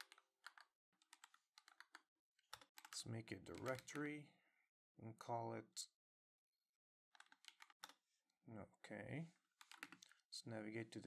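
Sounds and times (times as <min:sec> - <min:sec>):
typing on computer keyboard: 0:00.0 - 0:04.0, 0:07.1 - 0:08.0, 0:09.6 - 0:10.2.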